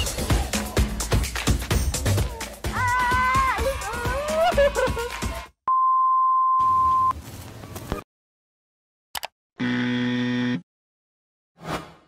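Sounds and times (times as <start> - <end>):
electronic buzzer: 9.6 - 10.6.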